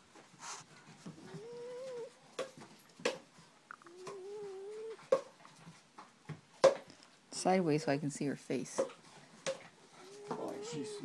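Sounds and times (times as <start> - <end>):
dog whining yowls: 1.2 - 2.2, 3.8 - 5.0, 10.0 - 11.0.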